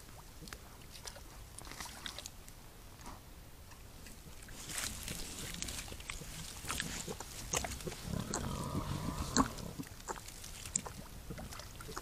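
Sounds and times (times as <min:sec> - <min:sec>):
boar crunching and rustling: 0:04.0 - 0:12.0
boar grunting: 0:05.4 - 0:10.2.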